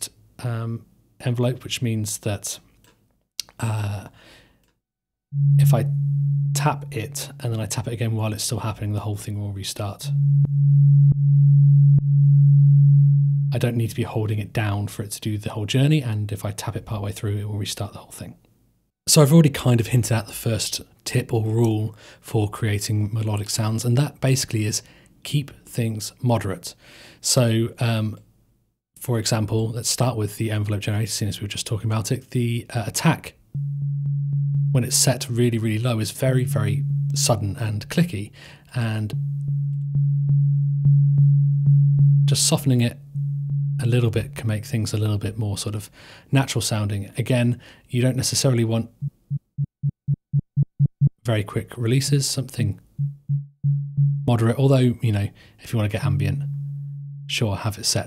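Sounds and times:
low steady sine tone: 0:05.3 - 0:07.4, 0:10.0 - 0:13.6, 0:33.6 - 0:35.3, 0:36.2 - 0:37.6, 0:39.1 - 0:44.4, 0:53.0 - 0:54.4, 0:56.2 - 0:57.4.

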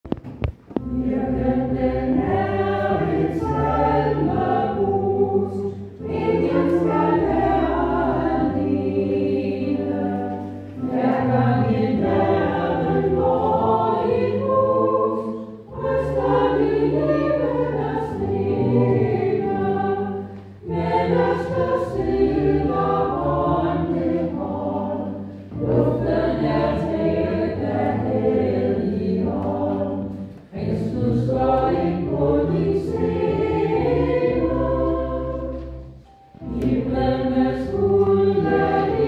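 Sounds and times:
church choir singing a hymn: 0:00.2 - 0:39.0.

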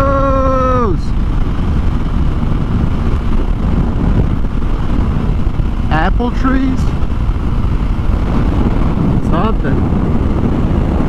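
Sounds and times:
motorcycle engine running steadily: 0:00.0 - 0:11.0
wind rushing over microphone: 0:00.0 - 0:11.0.

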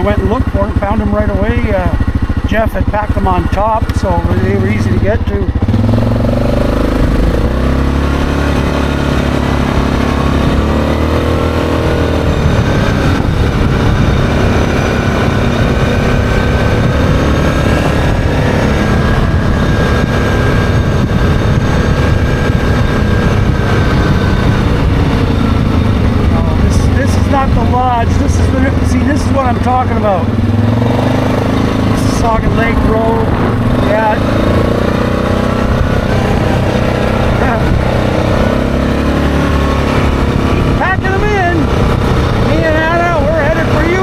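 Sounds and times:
atv engine running: 0:00.0 - 0:44.0
wind on microphone: 0:01.7 - 0:44.0.

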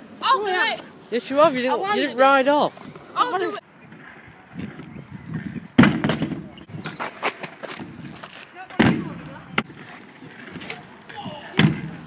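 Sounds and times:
scooter wheels rolling on wood: 0:01.4 - 0:12.0.

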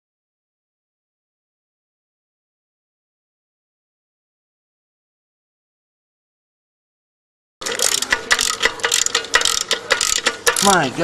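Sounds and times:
ratchet wrench clicking: 0:07.6 - 0:10.9.

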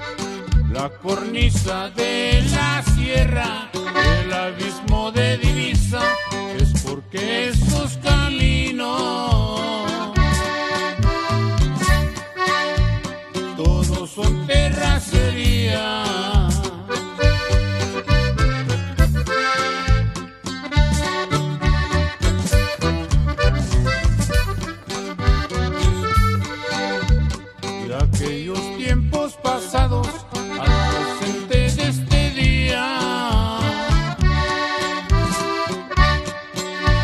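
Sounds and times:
accordion melody: 0:00.0 - 0:37.0
bass line: 0:00.0 - 0:37.0.

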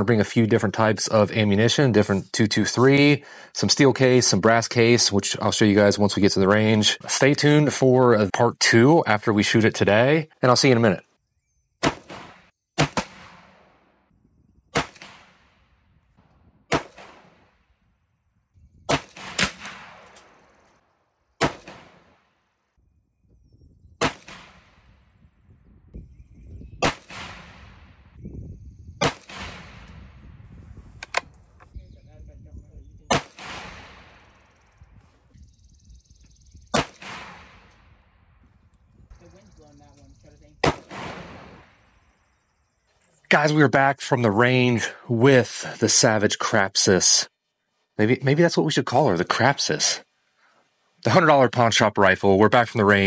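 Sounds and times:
rifle shots echoing: 0:11.8 - 0:13.9, 0:14.7 - 0:15.7, 0:16.7 - 0:17.6, 0:18.9 - 0:20.7, 0:21.4 - 0:22.3, 0:24.0 - 0:25.0, 0:26.8 - 0:28.1, 0:29.0 - 0:30.0, 0:33.1 - 0:34.6, 0:36.7 - 0:38.2, 0:40.6 - 0:42.0.

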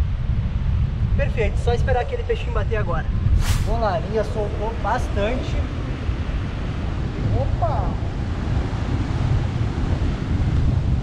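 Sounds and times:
wind buffeting microphone: 0:00.0 - 0:11.0
surf breaking: 0:03.4 - 0:04.2.

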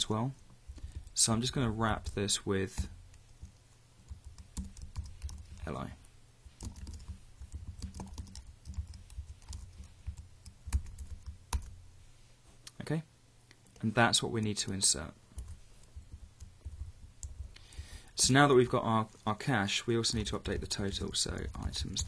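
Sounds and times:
typing on computer keyboard: 0:02.8 - 0:05.7, 0:06.6 - 0:11.7.

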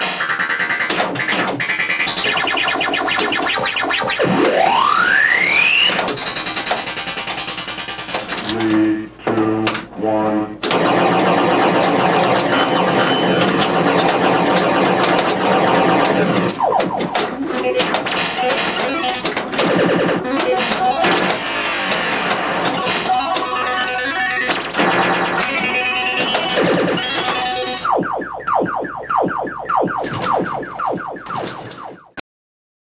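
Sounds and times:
fast run of repeated tones: 0:00.0 - 0:08.4, 0:10.7 - 0:18.9, 0:26.2 - 0:32.1
pinball electronic game music: 0:00.0 - 0:08.9, 0:10.6 - 0:32.2.

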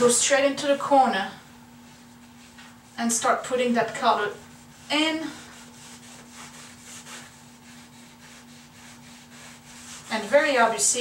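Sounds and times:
steady low hum: 0:00.0 - 0:11.0
rag rubbing on wood floor: 0:01.8 - 0:11.0.

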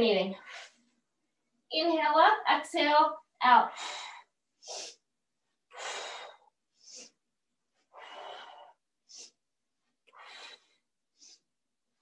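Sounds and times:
woman breathing hard: 0:05.7 - 0:07.2, 0:07.8 - 0:09.4, 0:10.1 - 0:11.5.

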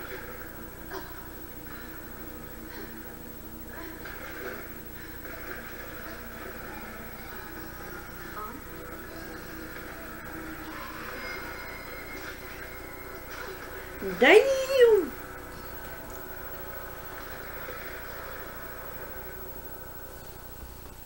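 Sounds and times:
indistinct television dialogue: 0:00.0 - 0:21.0
muffled television soundtrack: 0:00.0 - 0:21.0.

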